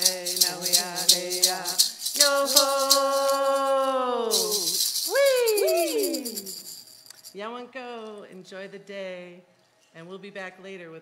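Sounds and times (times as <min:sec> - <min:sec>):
women singing: 0:00.0 - 0:06.5
hand rattle shaken: 0:00.0 - 0:07.5.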